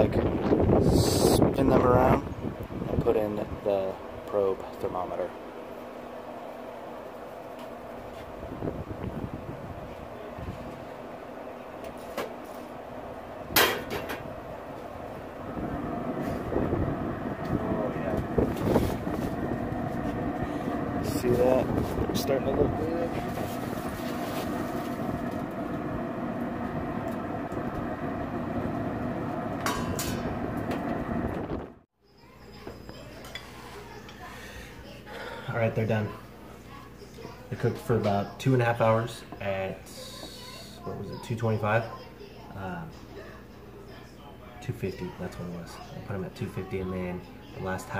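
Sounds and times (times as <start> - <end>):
pellet grill humming: 0.0 - 47.9.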